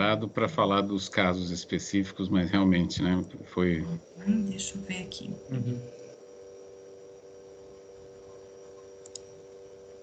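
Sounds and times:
faint electrical hum: 0.0 - 10.0
mouse click: 8.8 - 9.3.

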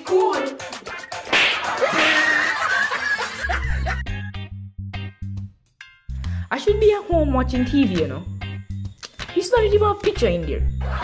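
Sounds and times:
boys laughing and snickering: 1.7 - 4.2
low bass line music: 3.7 - 11.0.

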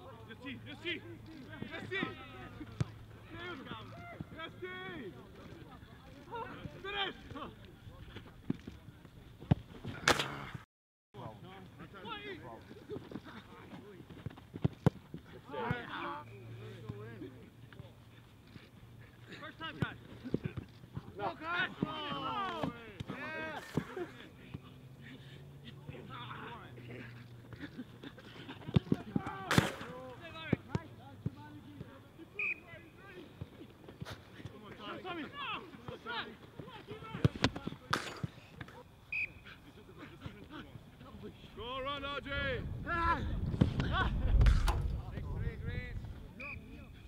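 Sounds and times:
players and coaches shouting: 3.2 - 5.2, 21.2 - 23.6.

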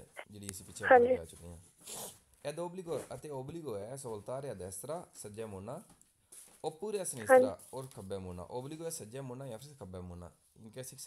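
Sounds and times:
man speaking: 0.0 - 1.6, 2.5 - 5.8, 6.7 - 11.0
short breathy hiss: 1.8 - 2.2.

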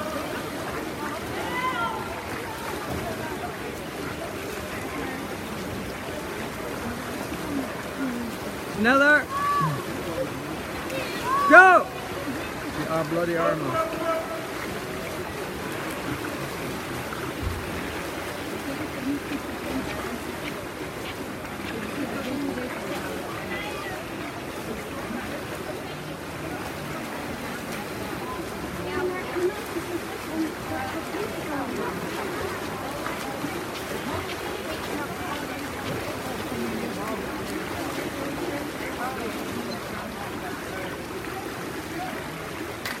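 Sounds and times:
echoing overlapping voices: 0.0 - 17.5
swimmers splashing: 0.0 - 43.0.

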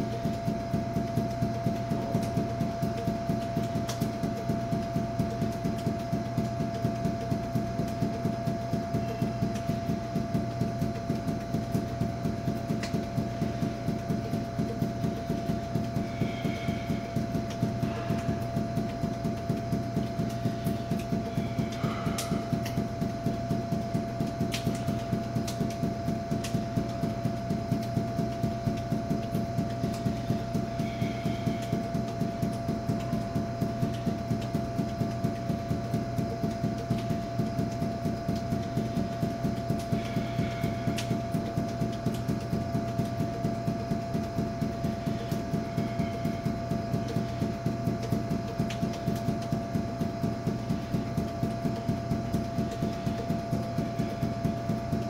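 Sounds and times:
steady hum: 0.0 - 55.0.

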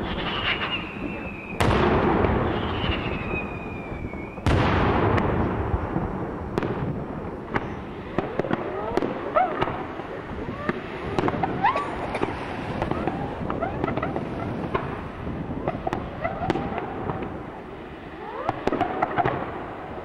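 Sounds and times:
firework shell bursts rumbling: 0.0 - 17.6
sharp firework cracks: 0.0 - 17.6.

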